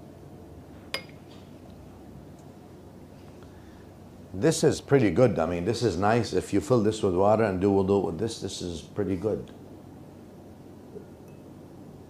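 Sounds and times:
drinking glass clink: 0:00.9 - 0:01.2, 0:11.0 - 0:11.5.

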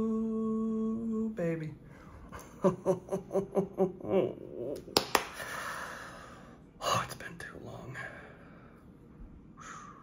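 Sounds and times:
man laughing: 0:02.4 - 0:04.7.

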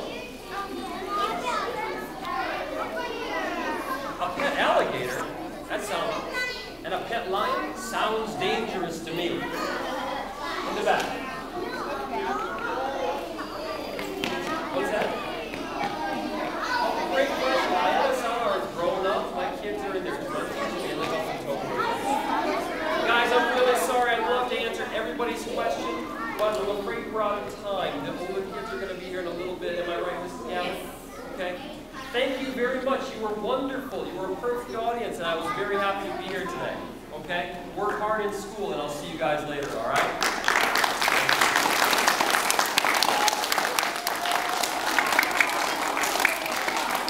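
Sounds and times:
young children talking: 0:00.0 - 0:47.0.

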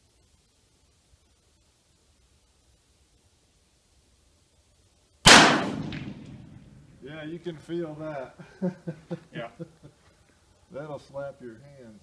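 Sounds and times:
revolver gunshot: 0:05.2 - 0:06.9.

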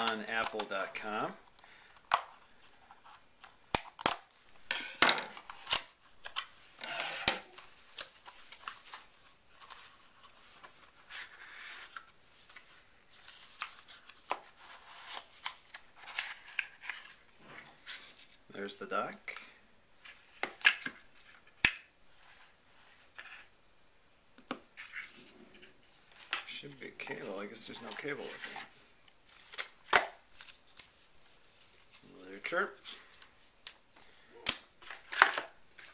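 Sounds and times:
paper rustling: 0:25.9 - 0:34.2.

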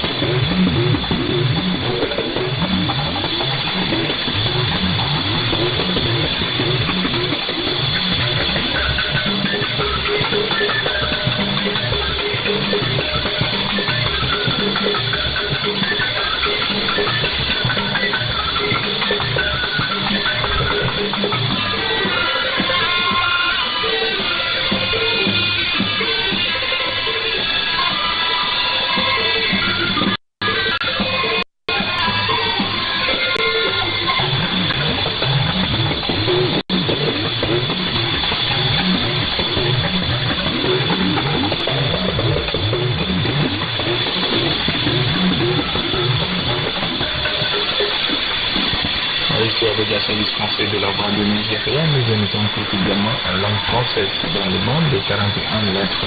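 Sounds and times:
radio hiss: 0:00.0 - 0:31.2, 0:31.8 - 0:56.0
music with drums over radio: 0:00.0 - 0:56.0
steady high whistle: 0:00.0 - 0:56.0.

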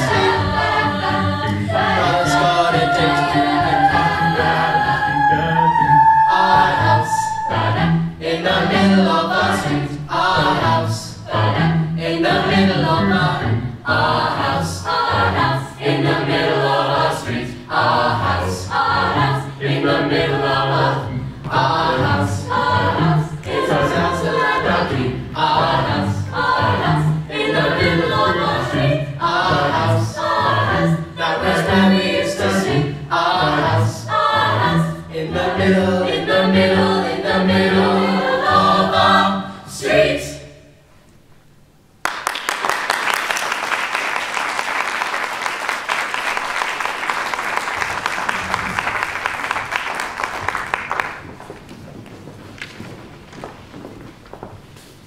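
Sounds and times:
choir singing in parts: 0:00.0 - 0:40.8
applause: 0:42.0 - 0:51.7.

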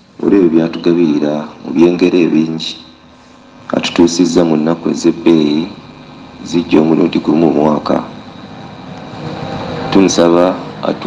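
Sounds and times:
steady rushing noise: 0:03.4 - 0:11.0.

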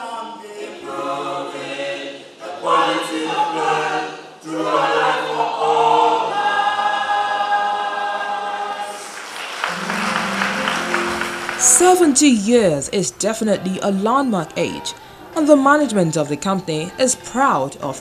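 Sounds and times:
mixed group singing in harmony: 0:00.0 - 0:12.2.

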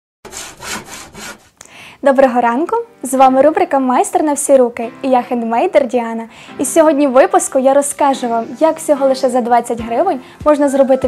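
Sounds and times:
saw rasping strokes: 0:00.2 - 0:01.6.

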